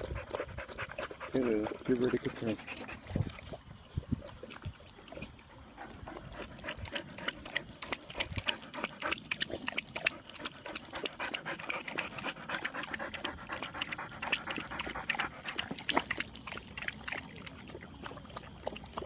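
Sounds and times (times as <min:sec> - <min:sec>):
dog lapping water: 0:00.0 - 0:19.0.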